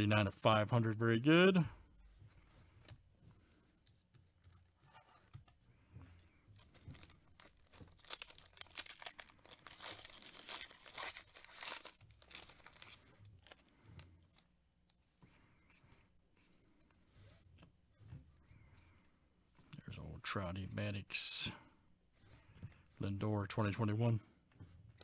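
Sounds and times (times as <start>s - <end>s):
plastic wrapper tearing and crinkling: 6.6s - 13.7s.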